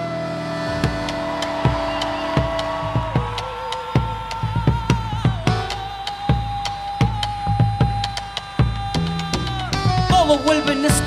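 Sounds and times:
folk band long held notes: 0:00.0 - 0:11.0.

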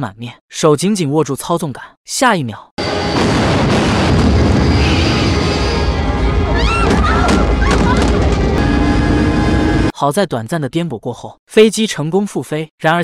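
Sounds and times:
dramatic music: 0:02.8 - 0:09.9
landing gear rumble with booms: 0:03.2 - 0:09.2.

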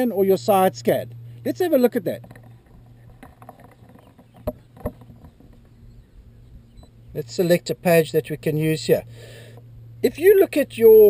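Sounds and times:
steady low hum: 0:00.0 - 0:11.0
sharp knocks: 0:03.2 - 0:05.6.

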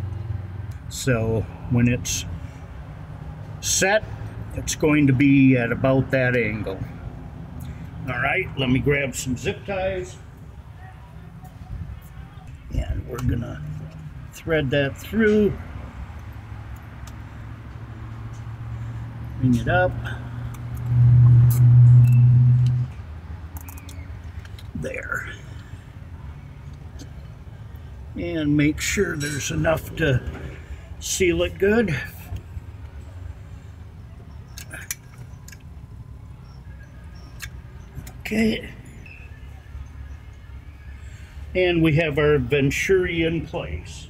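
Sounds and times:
small parts clicking: 0:23.5 - 0:24.7.

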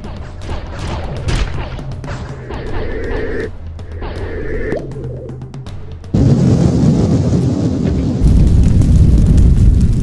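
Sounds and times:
cartoon fire blast rumble: 0:06.1 - 0:10.0.

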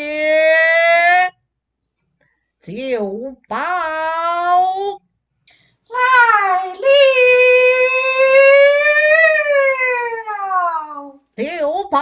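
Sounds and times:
opera performer's long call: 0:05.9 - 0:11.2.

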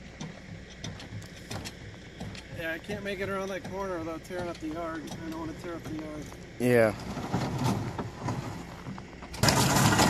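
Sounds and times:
pallet jack wheels grinding on gravel: 0:00.0 - 0:10.0.

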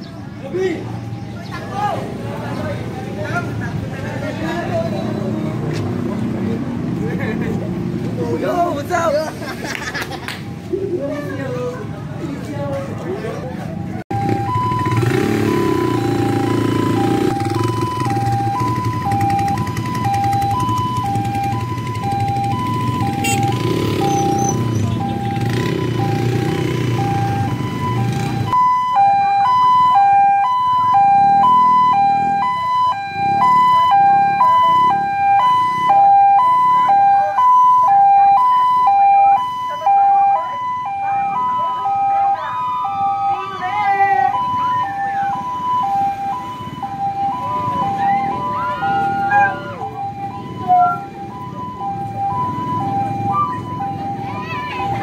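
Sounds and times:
two-tone ambulance siren: 0:14.1 - 0:55.0.

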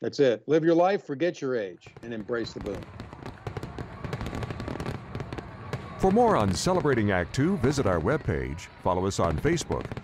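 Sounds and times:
fireworks crackling pops: 0:01.9 - 0:07.4, 0:09.1 - 0:10.0.

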